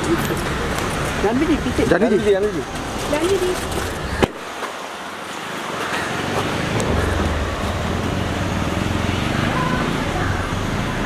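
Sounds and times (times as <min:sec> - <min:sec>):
street traffic: 0:00.0 - 0:11.0
vehicle engine rumble: 0:00.0 - 0:11.0.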